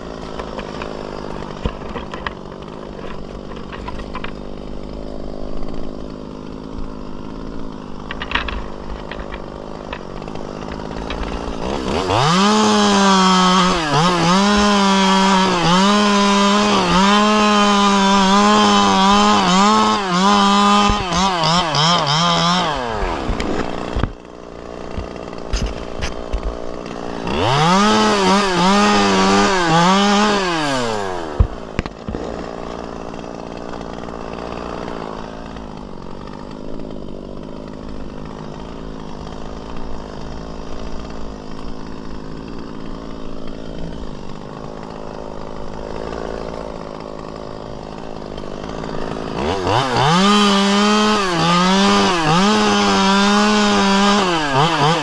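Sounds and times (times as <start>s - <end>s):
chainsaw revving and idling: 0.0s - 55.0s.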